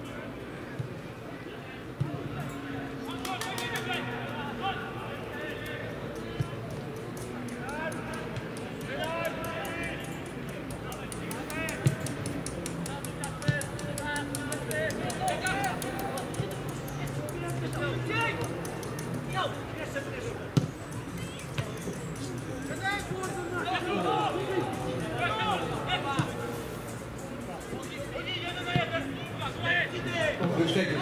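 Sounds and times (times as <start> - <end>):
players shouting: 7.5 - 26.7
ball being kicked: 20.6 - 20.8.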